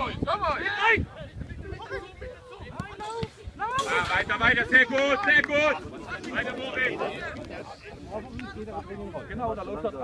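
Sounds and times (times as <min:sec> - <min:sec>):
voices calling outdoors: 0:00.0 - 0:10.0.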